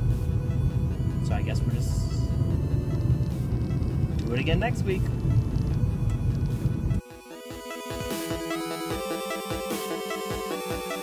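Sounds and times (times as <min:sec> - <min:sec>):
car cabin road and engine rumble: 0:00.0 - 0:07.0
faint background music: 0:00.1 - 0:11.0.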